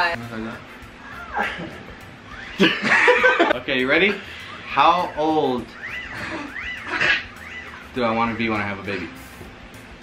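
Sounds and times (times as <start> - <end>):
small pet whining: 1.0 - 2.8, 4.4 - 8.0.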